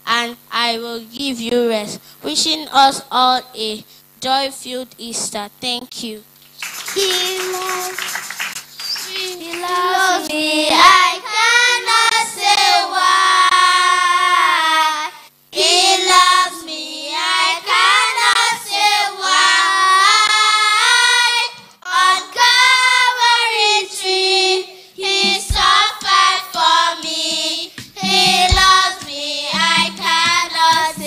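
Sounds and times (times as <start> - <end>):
children singing together: 9.1 - 31.0.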